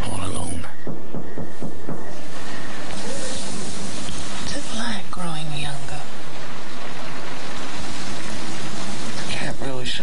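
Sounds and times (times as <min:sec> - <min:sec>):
steady hiss of noise: 0:00.0 - 0:10.0.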